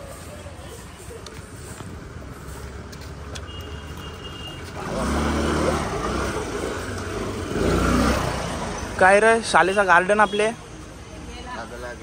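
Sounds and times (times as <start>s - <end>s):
vehicle engine passing: 4.6s - 9.6s.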